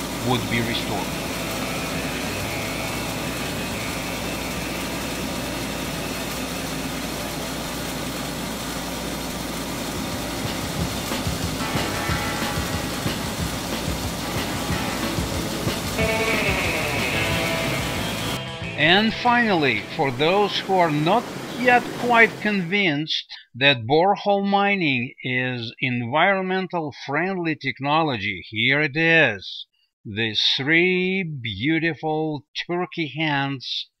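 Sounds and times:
vibrating screen rumble and wash: 0.0 - 18.4
music: 0.3 - 4.7, 10.4 - 20.9.

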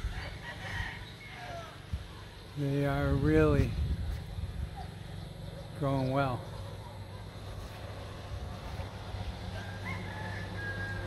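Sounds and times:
distant rooster crowing: 0.0 - 2.2, 9.2 - 11.0.

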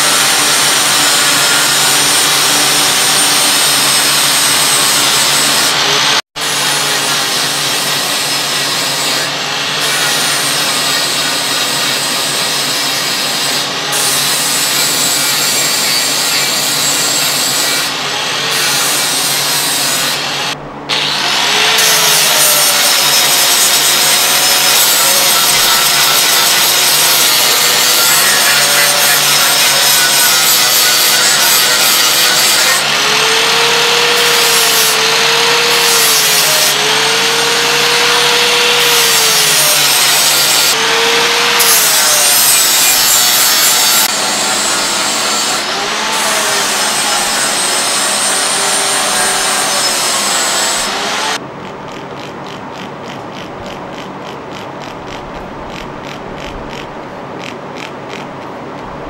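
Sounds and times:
power grinder on steel: 0.0 - 51.4.

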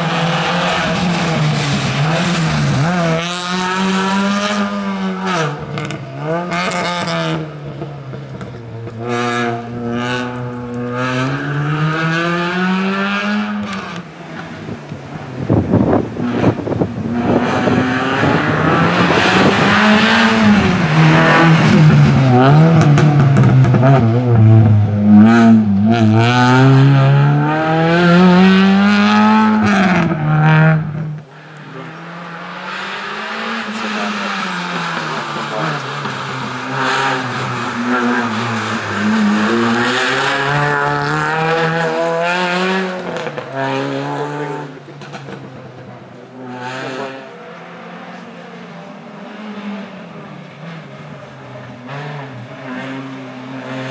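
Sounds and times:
race car engine revving: 0.0 - 53.9.

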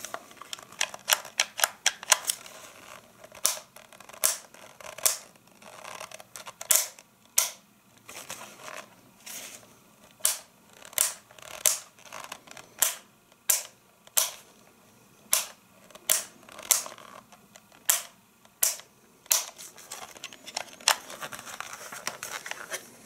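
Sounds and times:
rustling handling noise: 0.0 - 7.0, 7.9 - 12.8, 19.3 - 23.0.

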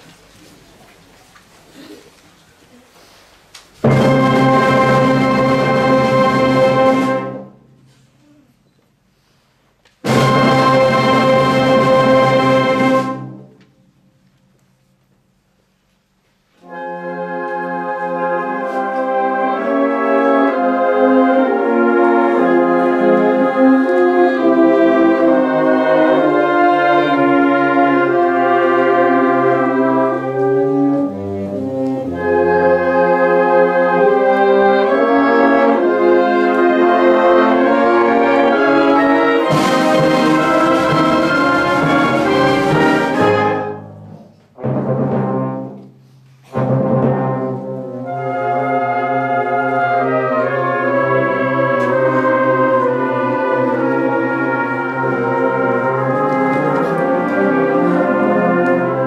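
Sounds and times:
concert band playing solemn chords: 3.8 - 7.9, 10.0 - 13.7, 16.6 - 59.0.

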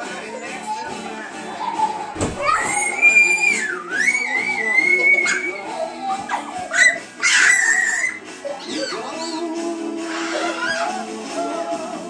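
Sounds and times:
background music: 0.0 - 12.0
child squealing: 1.7 - 9.4, 10.1 - 11.0.

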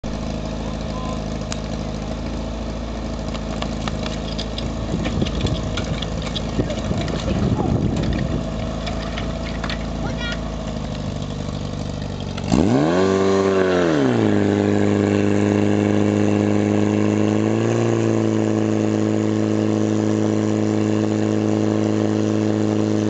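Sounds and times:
pump engine idling: 0.0 - 17.5
metal clanks and knocks: 3.5 - 10.0.

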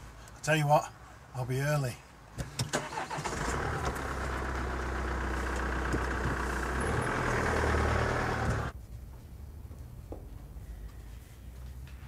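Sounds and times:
car engine running: 3.5 - 8.7.

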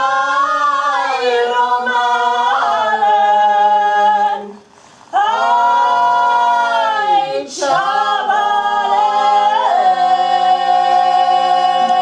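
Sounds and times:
singer's short breath: 4.6 - 5.1.

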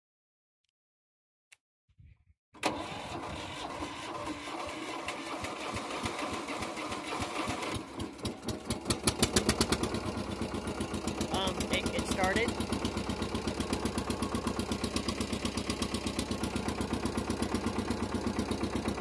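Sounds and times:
starter motor cranking: 2.6 - 10.0
tractor engine running unevenly: 2.6 - 19.0.

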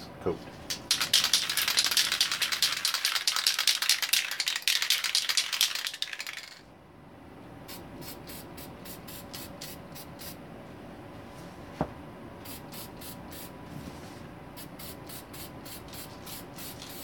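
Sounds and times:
spray can ball rattling: 0.7 - 6.6, 15.1 - 17.0.

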